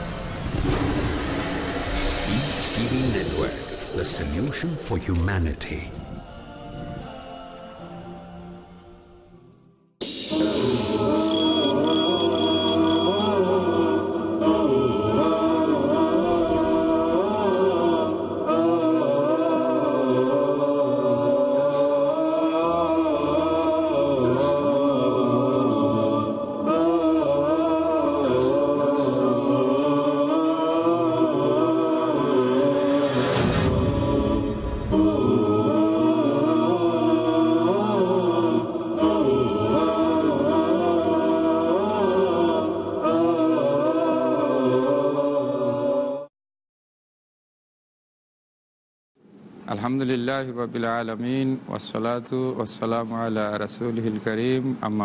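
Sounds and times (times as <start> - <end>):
steady held drone: 0.0 - 45.4
voices chanting slow melody: 2.2 - 46.3.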